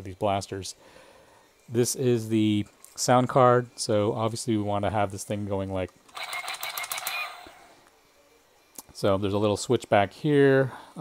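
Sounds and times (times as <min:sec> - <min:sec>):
toy blaster rapid-fire sound effect: 0:06.1 - 0:07.7.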